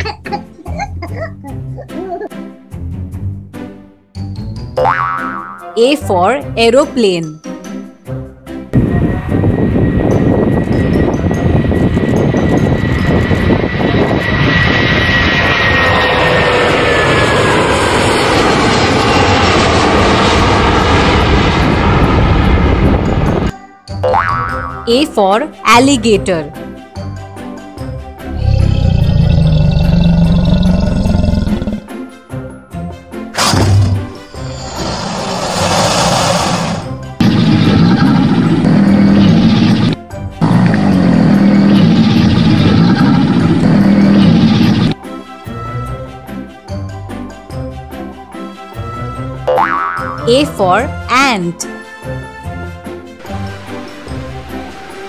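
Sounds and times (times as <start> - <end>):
light children's music: 0.0 - 12.9, 23.5 - 28.3, 45.0 - 55.0
cartoon boing sound effect: 4.8 - 5.8, 24.0 - 24.9, 49.5 - 50.3
deep pulsing crocodile roar: 28.2 - 31.9, 34.5 - 45.0.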